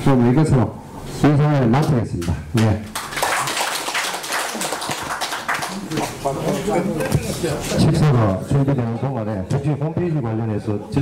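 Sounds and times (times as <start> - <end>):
people clapping: 1.8 - 6.7.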